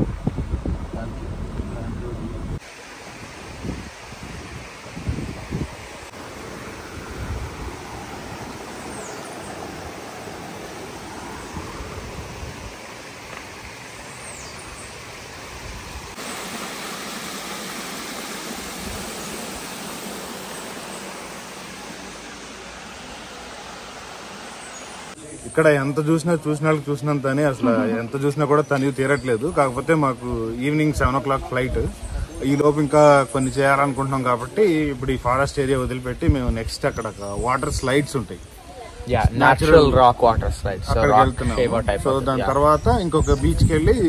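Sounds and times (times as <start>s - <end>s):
low bumps: 0.0s - 2.6s.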